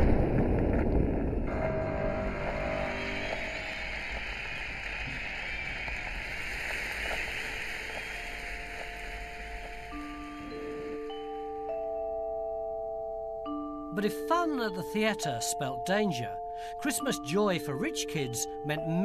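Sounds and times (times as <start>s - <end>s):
explosion rumbling and echoing: 0.0s - 8.0s
steady rushing noise: 0.0s - 10.8s.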